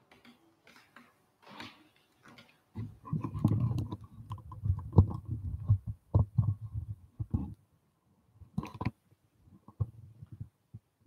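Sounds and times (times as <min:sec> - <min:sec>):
microphone handling thumps and rubbing: 0:02.8 - 0:07.6.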